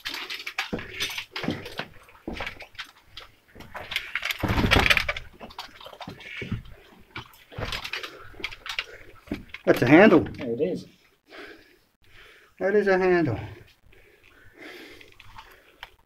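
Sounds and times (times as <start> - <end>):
footsteps scrambling over rubble: 0.0 - 10.8.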